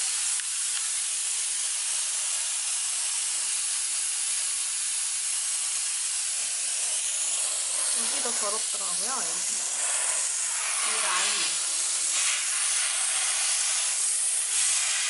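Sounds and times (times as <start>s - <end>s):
steam cleaner hissing: 0.0s - 15.0s.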